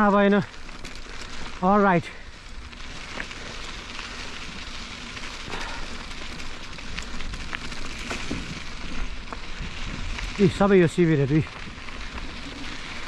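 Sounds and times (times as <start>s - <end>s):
bike tyres rolling on dirt: 0.0s - 13.0s.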